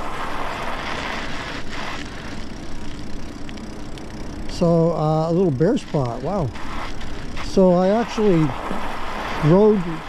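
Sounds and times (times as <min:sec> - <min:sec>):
bike tyres rolling on icy snow: 0:00.0 - 0:10.0
faint steady tone: 0:00.0 - 0:10.0.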